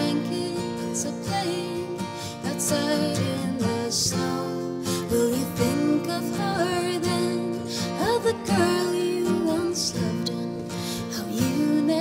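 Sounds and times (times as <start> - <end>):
acoustic guitars: 0.0 - 12.0
woman singing: 0.0 - 12.0.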